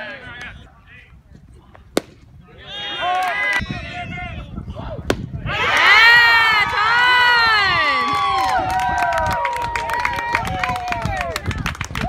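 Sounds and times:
crowd cheering and shouting: 0:02.5 - 0:12.0.

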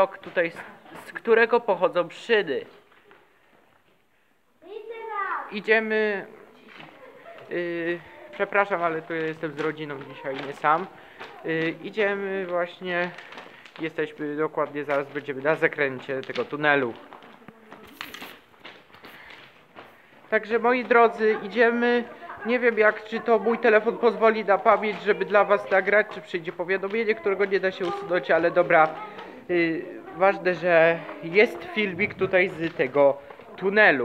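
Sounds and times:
person speaking: 0:04.7 - 0:18.4, 0:20.0 - 0:34.0
distant people talking: 0:06.2 - 0:18.4, 0:19.1 - 0:34.0.

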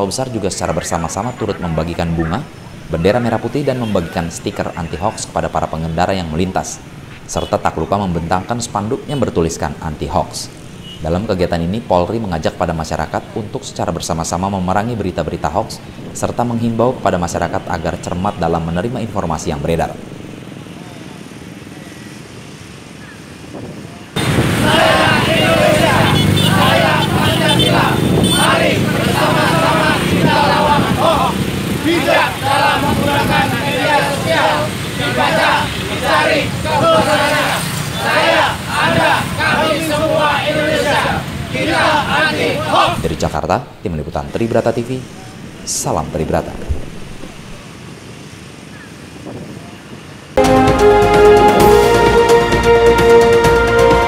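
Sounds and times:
faint voices: 0:23.8 - 0:43.0
motorcycle and car engines: 0:24.2 - 0:43.0.

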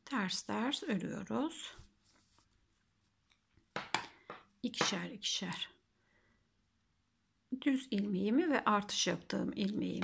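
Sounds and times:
yarn knitting handling sounds: 0:00.0 - 0:05.0.

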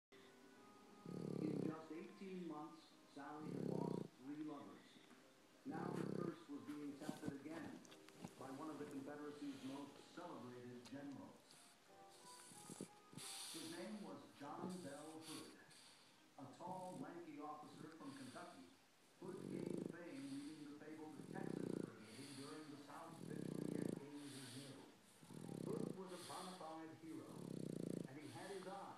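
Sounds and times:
dog snoring: 0:01.0 - 0:02.1, 0:03.2 - 0:04.4, 0:05.7 - 0:10.0, 0:11.2 - 0:28.9.

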